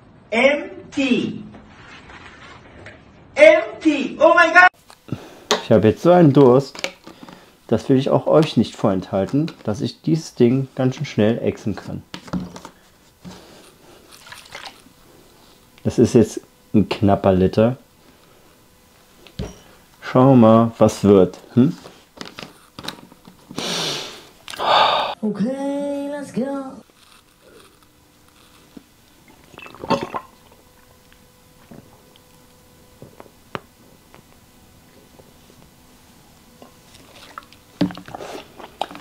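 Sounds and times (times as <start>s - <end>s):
person gulping a drink: 28.8s - 31.0s, 31.6s - 32.2s, 36.9s - 39.0s.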